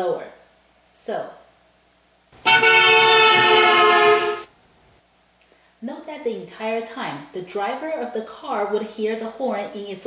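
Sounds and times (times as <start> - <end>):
passing car horn: 2.4 - 4.5.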